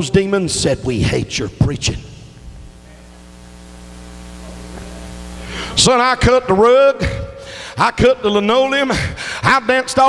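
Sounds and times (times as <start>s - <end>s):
electrical mains hum: 0.0s - 8.9s.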